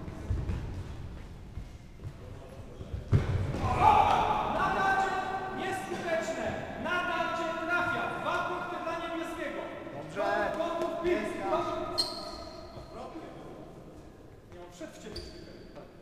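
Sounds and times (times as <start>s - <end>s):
voices talking in echoing hall: 0.0s - 16.0s.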